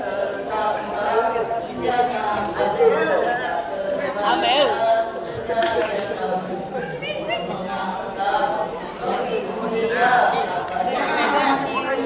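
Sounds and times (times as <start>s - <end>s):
background chatter: 0.0s - 12.0s
boys singing a cappella: 0.0s - 12.0s.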